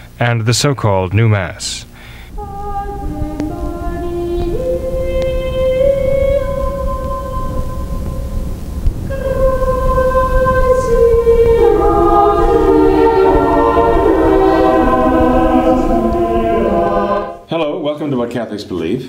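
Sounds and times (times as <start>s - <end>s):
steady low rumble: 1.8s - 17.5s
slow music of held chords: 2.3s - 17.5s.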